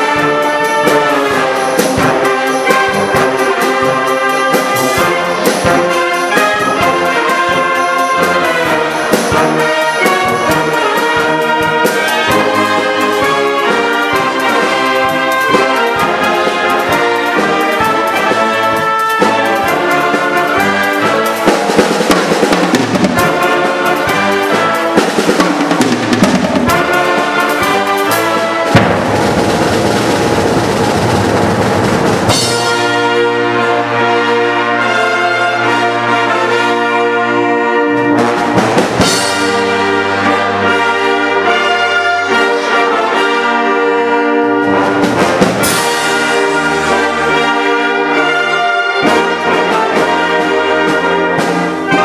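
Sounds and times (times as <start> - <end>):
brass sustained chords: 0.0 - 21.6, 22.8 - 25.1, 26.6 - 52.0
concert band playing: 0.0 - 52.0.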